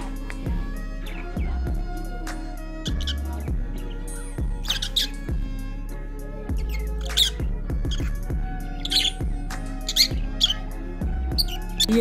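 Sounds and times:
background music with bass line: 0:00.0 - 0:12.0
parrots squawking and chirping: 0:02.8 - 0:05.5, 0:06.5 - 0:12.0.

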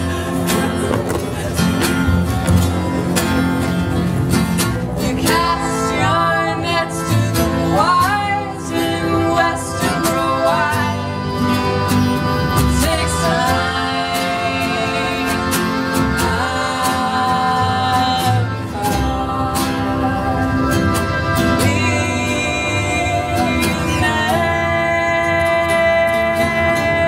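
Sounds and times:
plucked guitar: 0:00.0 - 0:27.0
sliding melody line: 0:00.0 - 0:27.0.

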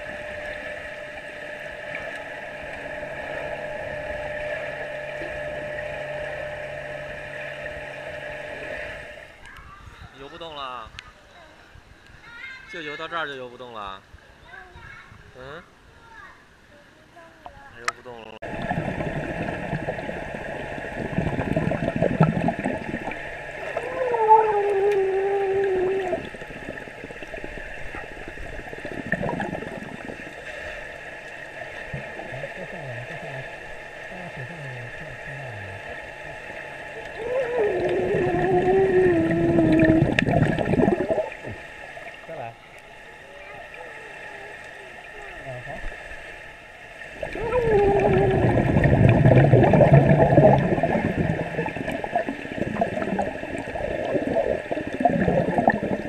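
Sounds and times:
underwater gurgling and sloshing: 0:00.0 - 0:10.1, 0:18.4 - 0:56.0
bubbles and splashing: 0:18.4 - 0:56.0
muffled voice humming underwater: 0:18.5 - 0:27.0, 0:31.9 - 0:36.4, 0:37.0 - 0:41.6, 0:47.2 - 0:56.0.

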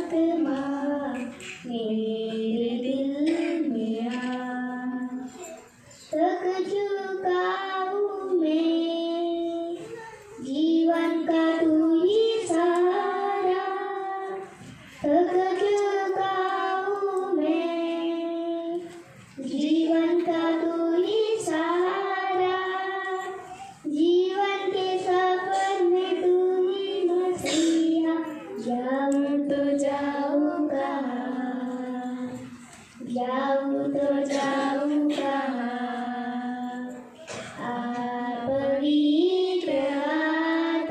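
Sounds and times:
girl singing unaccompanied: 0:00.0 - 0:40.9.

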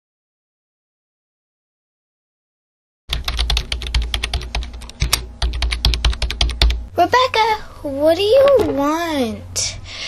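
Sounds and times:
rapid keyboard typing: 0:03.1 - 0:06.9.

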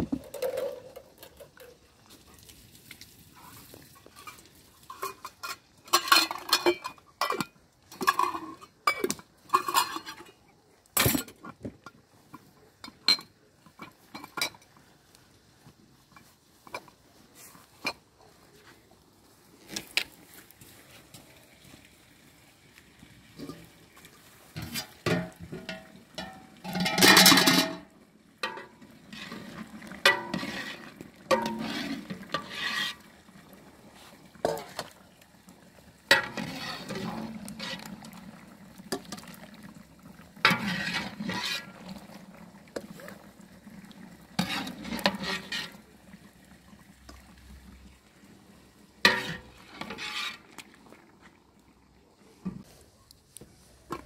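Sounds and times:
metal ladle clanking on pot: 0:04.9 - 0:10.3, 0:24.6 - 0:29.4, 0:30.0 - 0:32.9, 0:34.4 - 0:34.9, 0:49.1 - 0:50.4.

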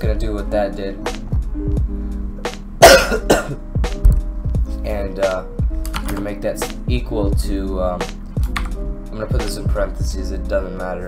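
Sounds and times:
background music with steady beat: 0:00.0 - 0:11.0
man coughing: 0:02.8 - 0:03.6.

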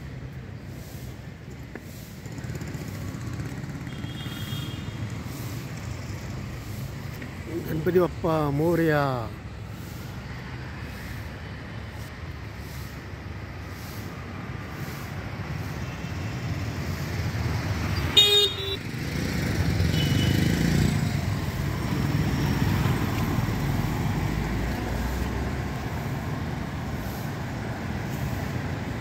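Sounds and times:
street traffic rumble: 0:00.0 - 0:29.0
vehicle horn honk: 0:03.9 - 0:04.9, 0:18.1 - 0:18.8, 0:19.9 - 0:20.5
vehicle passing close: 0:18.8 - 0:29.0.

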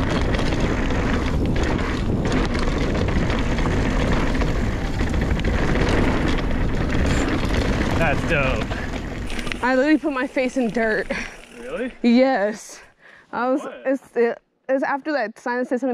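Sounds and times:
bike clicks and rattles: 0:00.0 - 0:12.6
wind rumbling on microphone: 0:00.0 - 0:12.6
bike tyres on dirt and rocks: 0:00.0 - 0:12.8.

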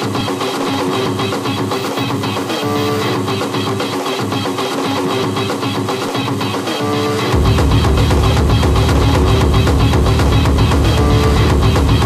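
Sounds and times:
fast electronic drum beat: 0:00.0 - 0:12.0
repeating synth riff: 0:00.0 - 0:12.0.

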